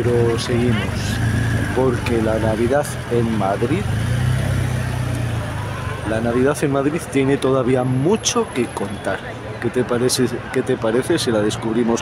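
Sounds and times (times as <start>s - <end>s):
car engines running: 0.0s - 12.0s.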